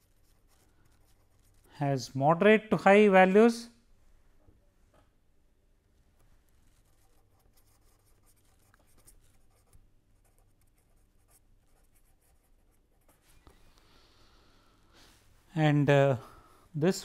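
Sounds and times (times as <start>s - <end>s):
pen scratching on paper: 6.8s - 13.2s.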